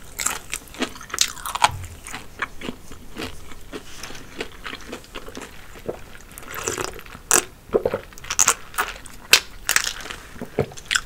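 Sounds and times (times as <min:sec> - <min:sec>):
chewing crispy fried chicken: 0:00.0 - 0:11.0.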